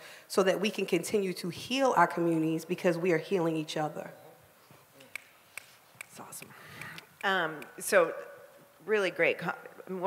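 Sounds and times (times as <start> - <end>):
faint finger snaps: 5.1 - 7.7.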